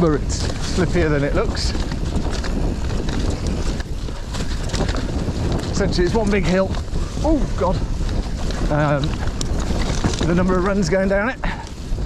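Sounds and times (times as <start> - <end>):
bike knocking and rattling: 0.0 - 12.0
bike tyres rolling on dirt: 0.0 - 12.0
wind buffeting microphone: 0.0 - 12.0.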